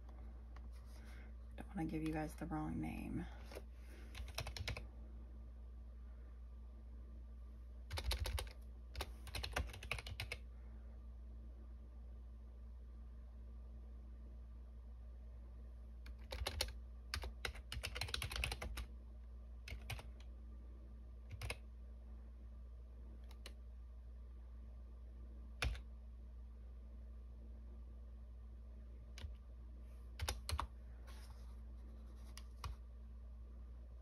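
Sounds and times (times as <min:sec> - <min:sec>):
typing on computer keyboard: 0:04.1 - 0:04.8, 0:07.9 - 0:10.4, 0:16.0 - 0:18.9, 0:19.7 - 0:20.3, 0:21.3 - 0:21.6, 0:25.6 - 0:25.9, 0:30.2 - 0:30.7.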